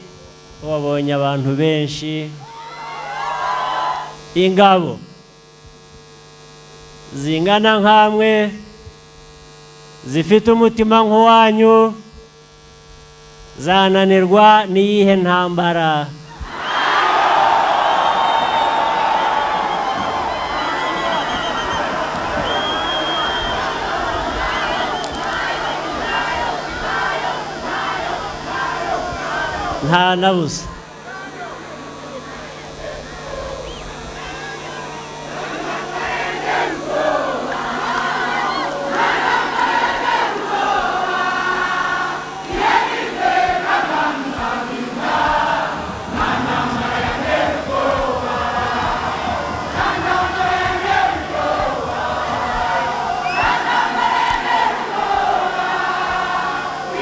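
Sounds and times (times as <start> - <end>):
large crowd cheering and shouting: 2.4 - 4.3, 16.3 - 57.0.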